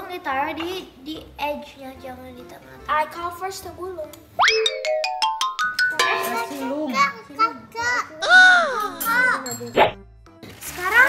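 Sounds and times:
light background music: 0.0 - 11.0
rising run of plinked notes: 4.4 - 7.1
young child's voice: 6.5 - 9.6, 10.7 - 11.0.

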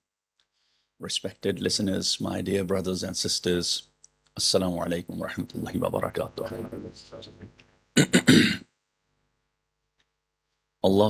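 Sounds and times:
man clearing his throat: 8.0 - 8.7.

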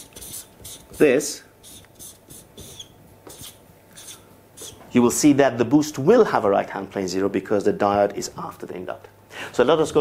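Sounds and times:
marker scratching on paper: 0.0 - 4.8.

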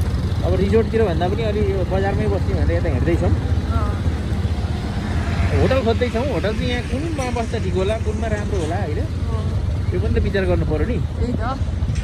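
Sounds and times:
motorcycle engine and road rumble: 0.0 - 12.0
people talking: 0.4 - 4.1, 5.5 - 11.7.

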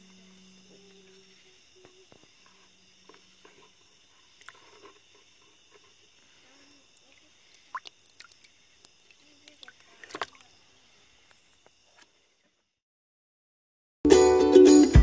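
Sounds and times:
insect trill: 0.0 - 12.8
water splashing in a bucket: 4.2 - 10.6.

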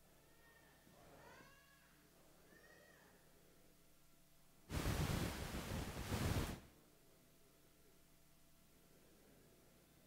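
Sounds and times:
faint high-pitched cries: 0.0 - 3.4.

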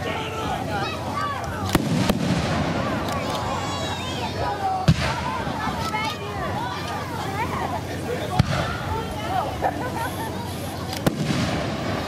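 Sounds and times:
firework bangs: 1.6 - 3.8, 4.8 - 5.8, 8.3 - 9.1, 10.9 - 12.0.

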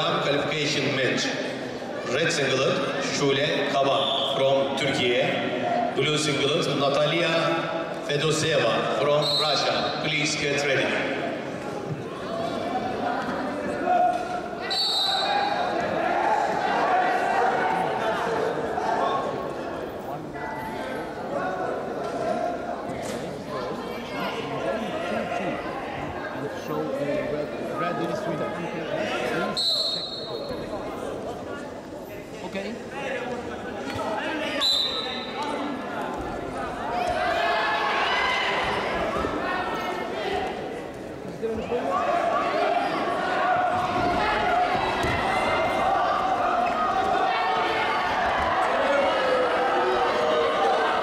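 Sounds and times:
voices echoing in a hall: 0.0 - 51.0
referee's whistle blast: 14.6 - 15.4, 29.5 - 30.5, 34.6 - 35.3
voices shouting: 41.7 - 51.0.

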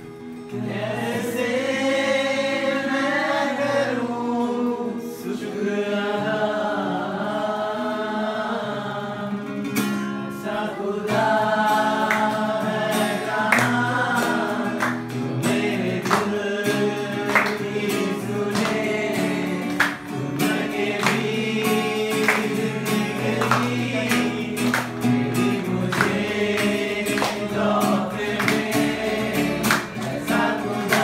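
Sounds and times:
strummed acoustic guitar: 0.0 - 31.0
person singing worship song: 0.5 - 31.0.

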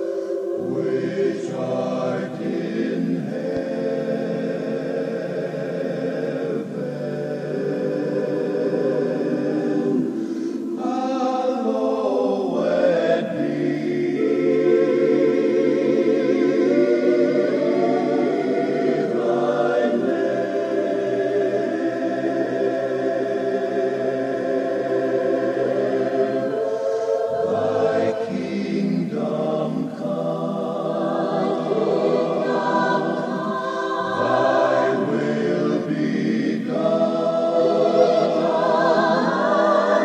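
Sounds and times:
choir singing wordless chords: 0.0 - 40.0.

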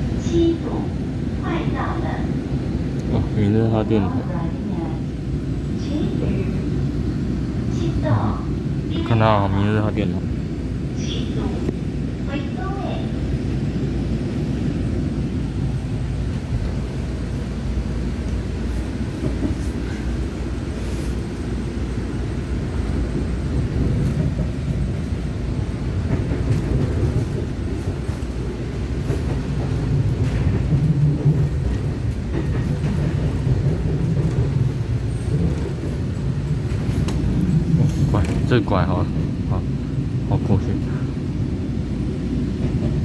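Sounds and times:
train wheels rumbling on rail: 0.0 - 43.0.

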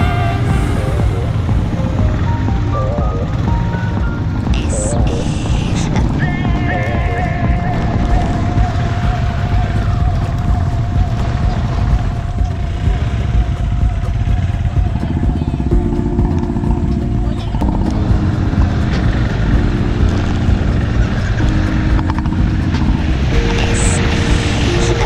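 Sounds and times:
background music of held chords: 0.0 - 25.0
motorcycle engine rumble: 0.0 - 25.0
wind on microphone: 0.0 - 25.0.

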